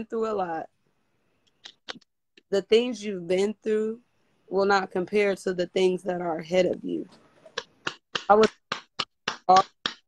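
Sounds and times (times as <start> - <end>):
woman speaking: 0.0 - 0.7, 1.9 - 7.2, 8.3 - 8.6, 9.4 - 9.8.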